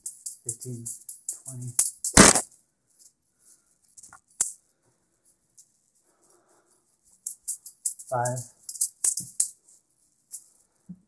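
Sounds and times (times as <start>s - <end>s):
loud crash: 2.2s - 2.4s.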